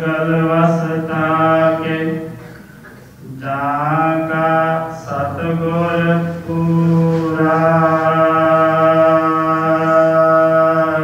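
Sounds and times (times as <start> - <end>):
man chanting: 0.0 - 2.4, 3.2 - 11.0.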